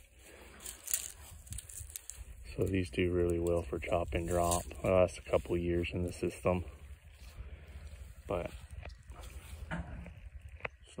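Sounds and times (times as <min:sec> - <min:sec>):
low steady rumble: 0:00.2 - 0:11.0
man speaking: 0:02.5 - 0:06.8, 0:08.2 - 0:08.6.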